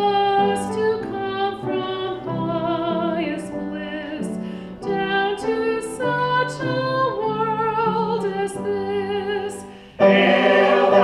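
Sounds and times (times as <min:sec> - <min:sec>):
mixed choir singing in parts: 0:10.0 - 0:11.0.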